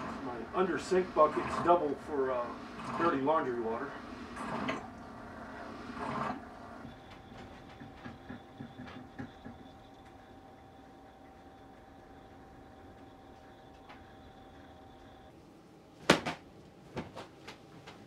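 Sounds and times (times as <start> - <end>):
faint steady whine: 0.0 - 18.0.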